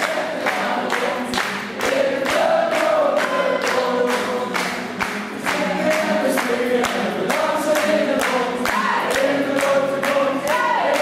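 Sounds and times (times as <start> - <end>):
acoustic guitars: 0.0 - 11.0
voices singing together: 0.0 - 11.0.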